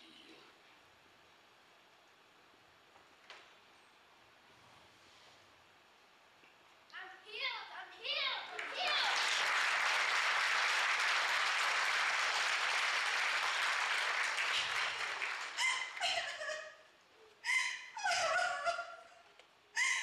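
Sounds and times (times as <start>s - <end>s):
audience applauding: 8.5s - 16.4s.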